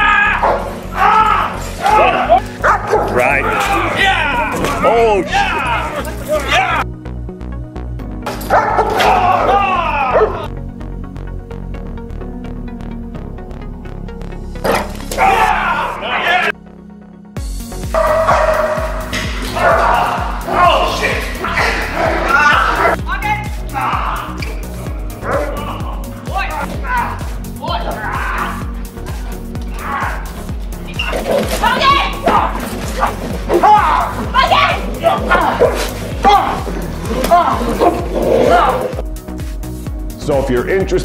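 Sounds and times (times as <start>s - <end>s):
dog barking and yelping: 1.9s - 3.8s, 8.4s - 9.4s, 17.9s - 20.6s, 21.4s - 23.0s, 30.9s - 39.0s
background music with beat: 16.5s - 41.0s.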